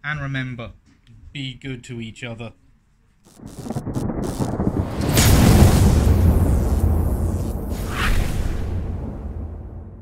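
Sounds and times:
thunder-like rumbling: 0:03.4 - 0:10.0.

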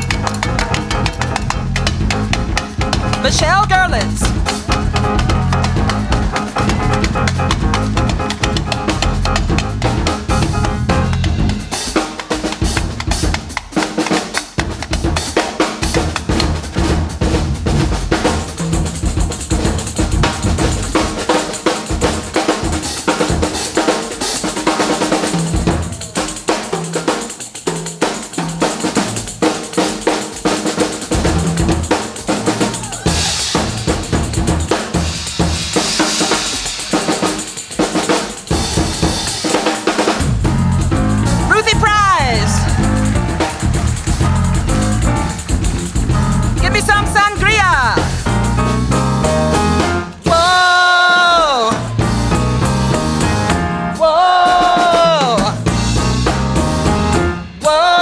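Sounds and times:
jazz combo playing: 0:00.0 - 0:13.5, 0:31.1 - 0:57.9
congas: 0:00.0 - 0:58.0
drum kit playing: 0:00.0 - 0:58.0
cymbals: 0:18.2 - 0:58.0.

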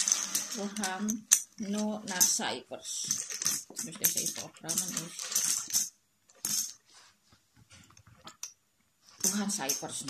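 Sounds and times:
plastic tiles clattering on wood: 0:00.0 - 0:06.8, 0:09.2 - 0:10.0.

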